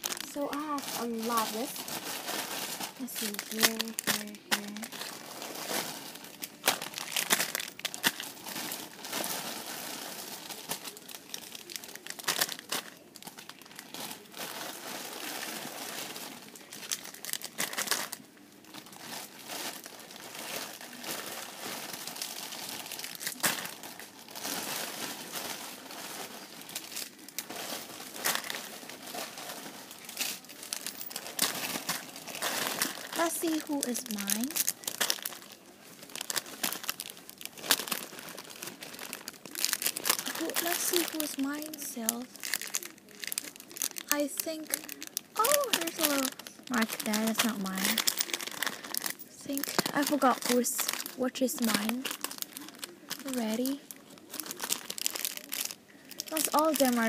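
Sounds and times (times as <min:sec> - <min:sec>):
plastic wrappers crinkling: 0:00.0 - 0:57.0.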